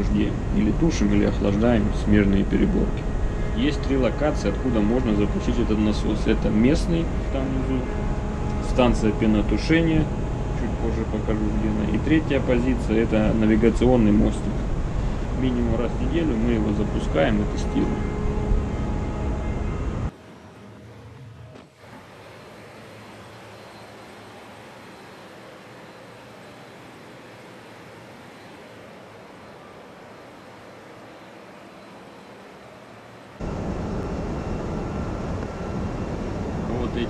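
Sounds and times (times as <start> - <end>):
quiet steady hum: 0.0 - 37.0
ship engine room machinery: 0.0 - 37.0.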